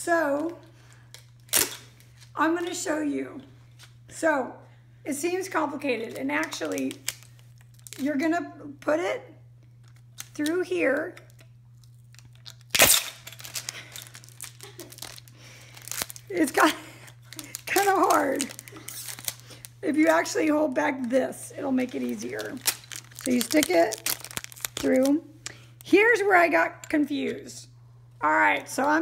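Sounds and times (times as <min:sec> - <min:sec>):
steady low hum: 0:00.0 - 0:29.0
plastic tape crinkling: 0:00.4 - 0:02.3, 0:06.1 - 0:08.1, 0:09.8 - 0:26.0
packing tape dispenser handled: 0:12.1 - 0:20.3, 0:21.8 - 0:25.2.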